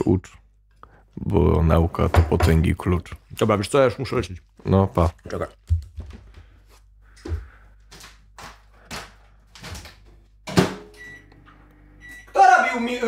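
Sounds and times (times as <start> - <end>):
microwave oven humming: 10.8 - 13.0.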